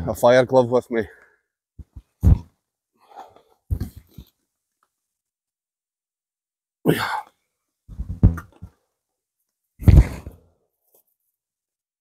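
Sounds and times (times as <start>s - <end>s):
man exhaling: 6.9s - 7.3s.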